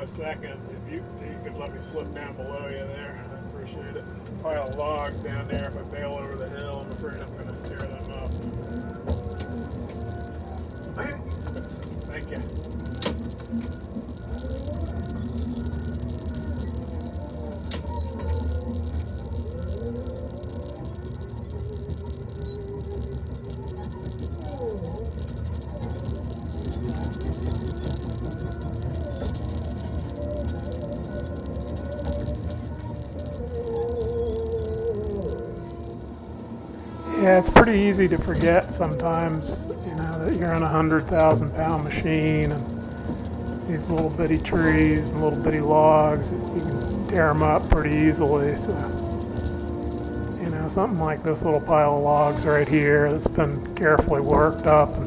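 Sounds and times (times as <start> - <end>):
diesel engine running: 0.0 - 55.0
high alarm beeping: 0.0 - 55.0
hydraulic whines: 0.0 - 55.0.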